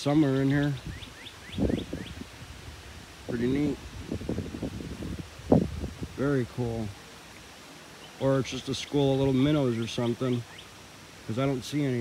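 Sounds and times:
bird chirping: 0.1s - 2.2s, 7.9s - 10.8s.

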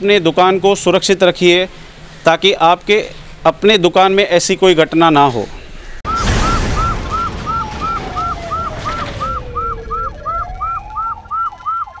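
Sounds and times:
police siren yelp and wail: 6.1s - 12.0s.

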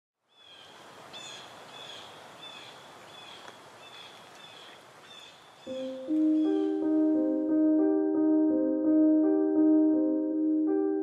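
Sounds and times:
outdoor ambience hiss: 0.2s - 8.0s.

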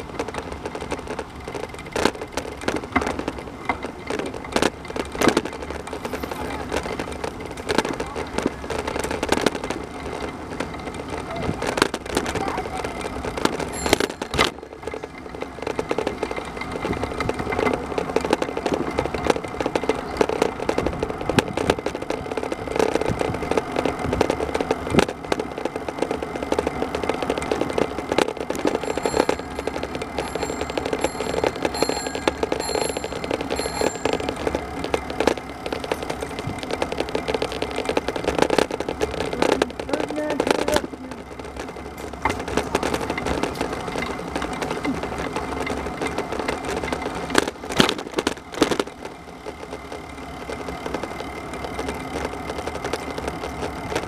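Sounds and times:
wheels rolling over asphalt: 0.0s - 54.0s
short high pings: 13.7s - 14.5s, 28.8s - 34.8s.

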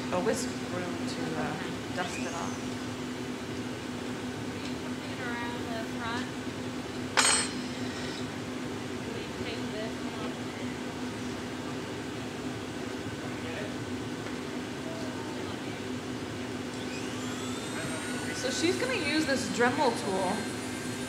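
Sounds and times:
furnace hum: 0.0s - 21.0s
sharp ringing glass clink: 7.2s - 7.6s.

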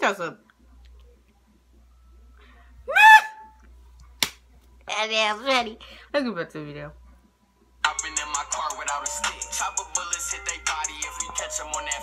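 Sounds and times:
woman squealing: 2.9s - 3.6s.

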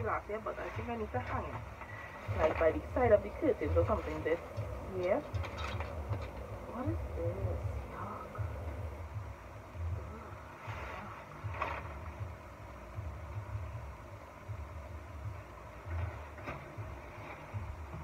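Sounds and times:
low uneven rumble: 0.0s - 18.0s.

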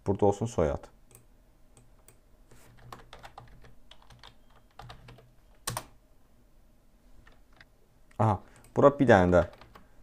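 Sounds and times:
computer keyboard typing: 1.1s - 6.0s, 8.6s - 9.9s.

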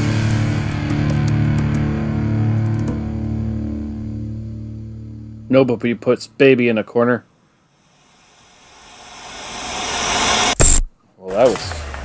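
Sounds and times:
hiss of noise: 7.7s - 10.6s
noise swell with high tone: 7.7s - 10.8s.

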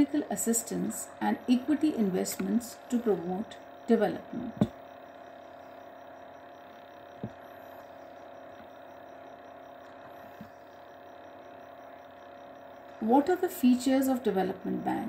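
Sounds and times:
steady electrical hum: 0.0s - 15.0s.

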